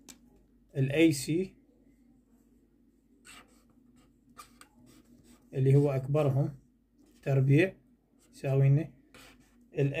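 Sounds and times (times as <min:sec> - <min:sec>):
marker scratching paper: 0:03.2 - 0:06.1, 0:09.1 - 0:09.6.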